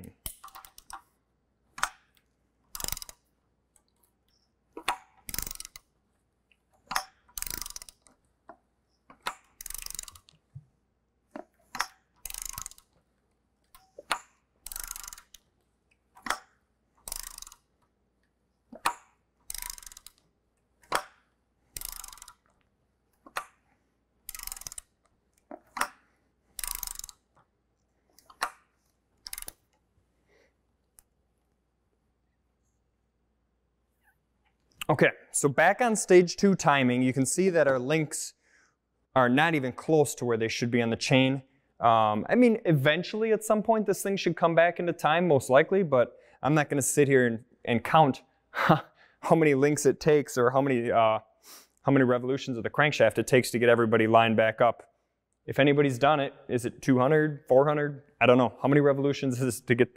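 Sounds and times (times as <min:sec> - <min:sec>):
hand ratchet clicking: 0:00.2 - 0:01.1, 0:01.7 - 0:03.3, 0:04.8 - 0:05.9, 0:06.7 - 0:10.4, 0:11.3 - 0:17.9, 0:18.7 - 0:23.6, 0:24.2 - 0:27.4, 0:28.1 - 0:29.8.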